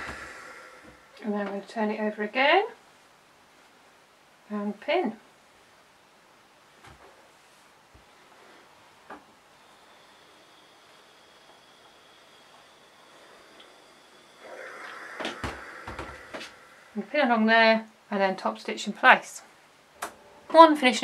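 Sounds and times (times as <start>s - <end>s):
iron hissing: 0.0s - 1.4s, 8.1s - 17.8s.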